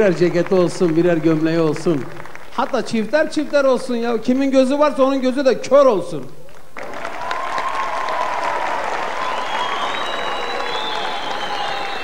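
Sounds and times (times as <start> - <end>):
audience applauding: 0.0 - 3.0, 6.5 - 12.0.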